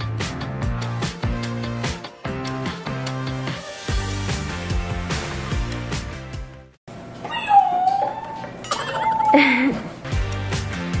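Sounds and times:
background music with a beat: 0.0 - 6.8, 10.1 - 11.0.

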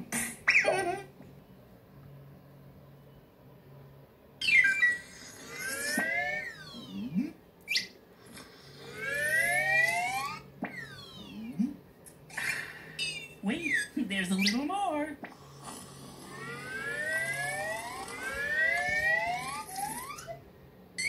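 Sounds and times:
faint low hum: 0.0 - 21.0.

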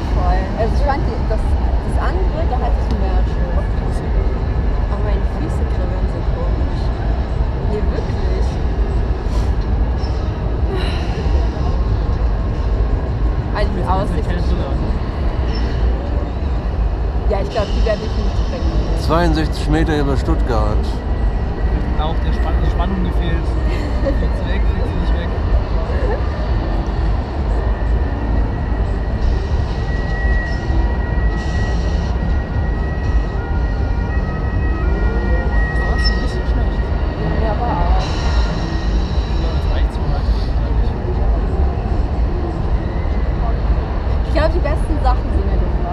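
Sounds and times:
faint voices: 10.6 - 30.2, 32.0 - 45.9.

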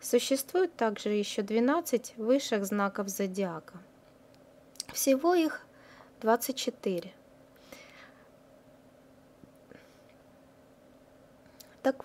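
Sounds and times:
faint steady hum: 0.0 - 12.0
person speaking: 4.8 - 7.2.

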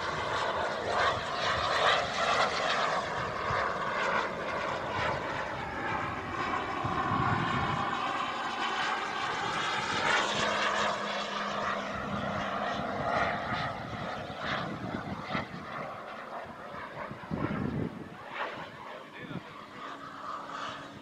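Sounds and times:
model jet turbine whine: 0.0 - 21.0.

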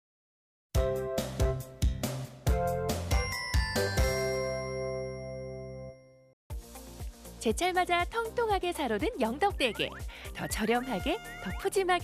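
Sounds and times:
bell-like chord ringing: 3.4 - 6.3.

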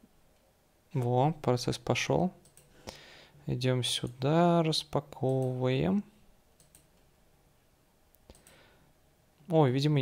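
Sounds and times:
faint computer mouse clicks: 6.6 - 7.0, 8.2 - 8.6.

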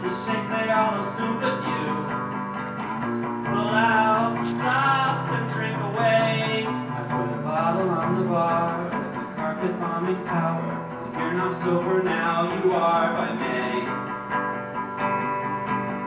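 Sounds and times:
man singing: 0.0 - 2.4, 3.4 - 14.2
electric guitar strumming: 0.0 - 16.0.

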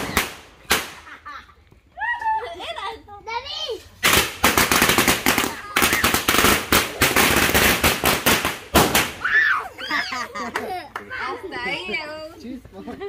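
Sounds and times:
firecrackers banging: 0.0 - 1.3, 3.9 - 9.2.

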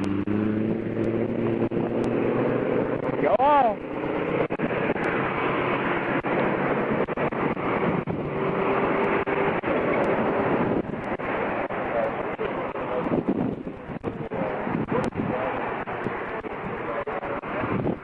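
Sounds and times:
traffic passing close by: 0.0 - 18.0
truck engines humming: 0.0 - 18.0.

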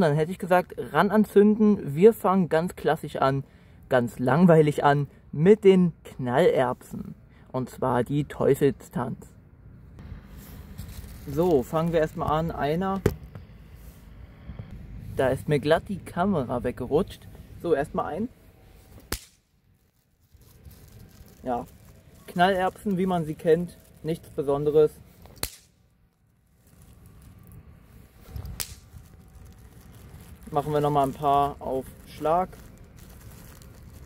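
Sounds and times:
snap pop firecracker cracking: 19.0 - 19.5, 25.2 - 25.8, 28.4 - 29.0.

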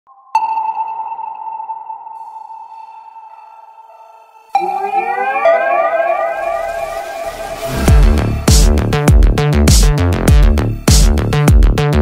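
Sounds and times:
ringing bell-like tone: 0.4 - 8.5.

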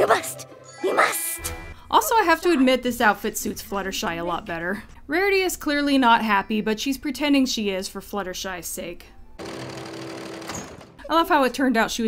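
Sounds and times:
electric sewing machine running: 9.4 - 10.9.

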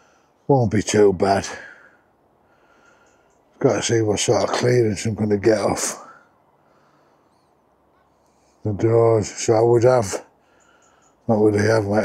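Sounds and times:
faint high bird chirp: 2.8 - 3.7, 7.1 - 8.6, 10.4 - 12.0
man's voice: 3.6 - 6.2, 8.6 - 10.3, 11.3 - 12.0.

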